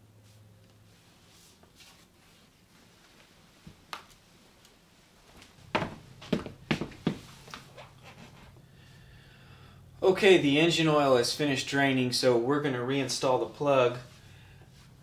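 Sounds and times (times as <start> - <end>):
footsteps on wooden floor: 5.2 - 8.4.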